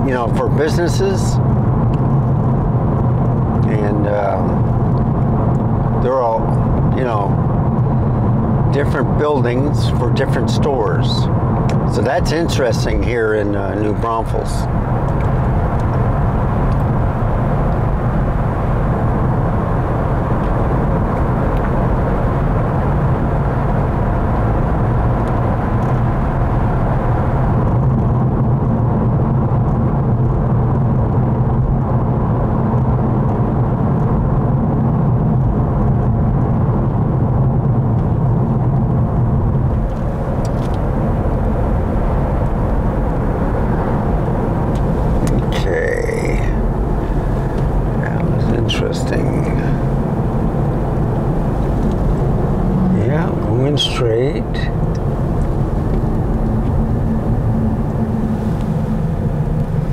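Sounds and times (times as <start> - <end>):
car road and engine noise: 0.0 - 59.9.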